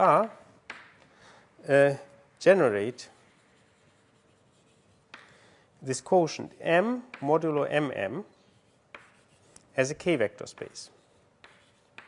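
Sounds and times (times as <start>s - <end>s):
chalk writing on blackboard: 3.0s - 5.4s, 8.3s - 9.7s, 10.4s - 12.0s.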